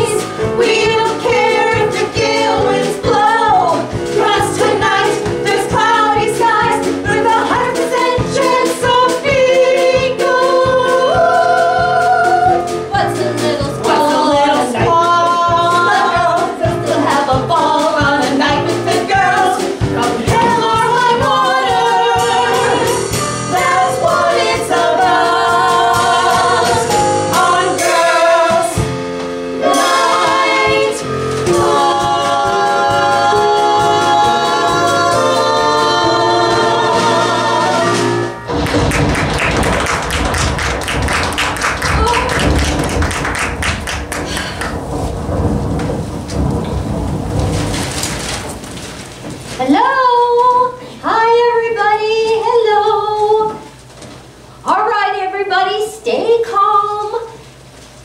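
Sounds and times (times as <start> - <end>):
women singing over backing track: 0.0 - 38.4, 49.6 - 53.8
rain and thunder: 38.7 - 49.5.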